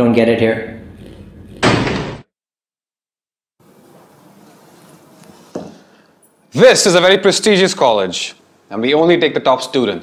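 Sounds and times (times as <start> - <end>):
stamp slam hit: 1.6 - 2.3.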